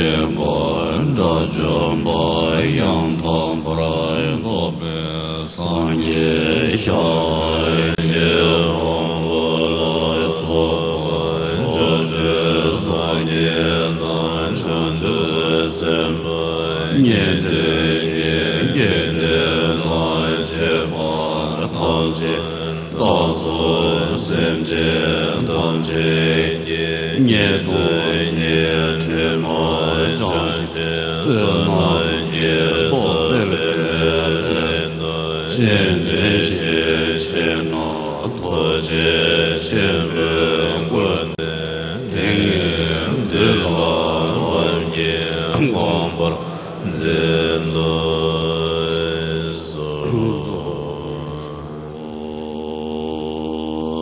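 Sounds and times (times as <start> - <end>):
monks chanting in unison: 0.0 - 54.0.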